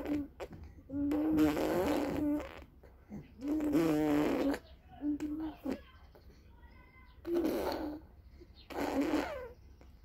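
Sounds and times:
baby blowing raspberries: 0.0s - 5.8s, 7.2s - 9.6s.

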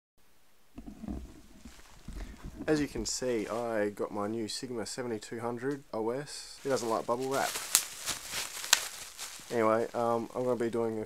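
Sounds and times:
faint hiss: 0.2s - 11.0s
faint rustling: 0.7s - 11.0s
handling noise bumps and rumbles: 0.8s - 3.7s, 6.6s - 10.6s.

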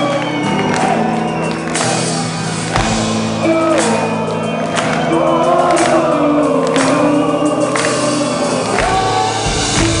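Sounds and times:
heavy drums: 0.0s - 10.0s
live metal band playing: 0.0s - 10.0s
choir-like clean vocals: 3.4s - 10.0s.

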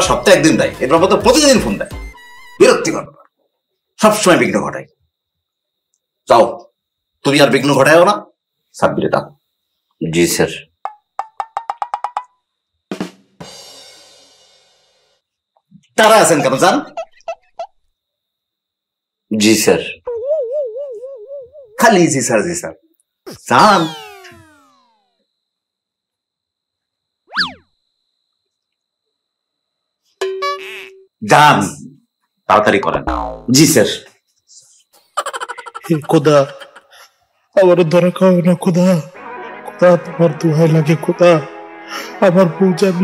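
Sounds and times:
cartoon boing swoop: 23.8s - 25.0s, 27.3s - 27.6s, 33.0s - 33.6s
pitched percussion knocks: 33.0s - 33.6s.

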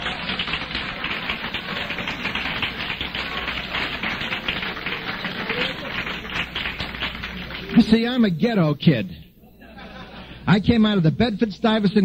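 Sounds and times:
crowd applauding: 0.0s - 8.3s.

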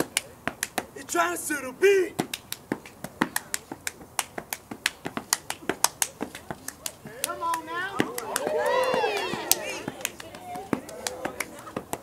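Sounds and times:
hands clapping and slapping: 0.0s - 0.9s, 2.2s - 12.0s.

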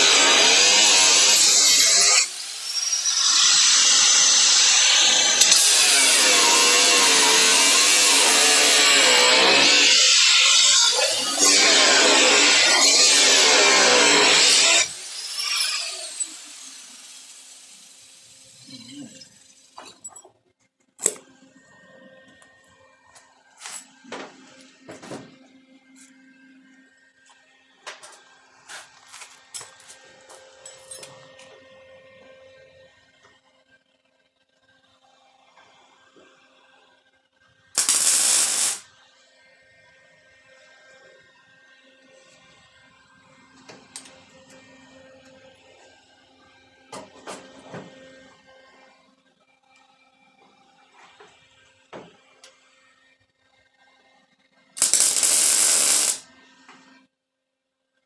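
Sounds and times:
angle grinder cutting steel: 0.0s - 18.8s, 37.8s - 38.8s, 54.8s - 56.2s.

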